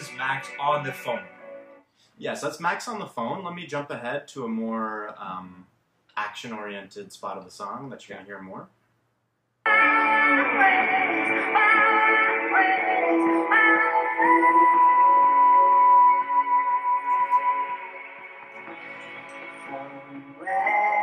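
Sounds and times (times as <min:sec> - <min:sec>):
pop song through small speaker: 0:00.0 - 0:01.9, 0:09.6 - 0:21.0.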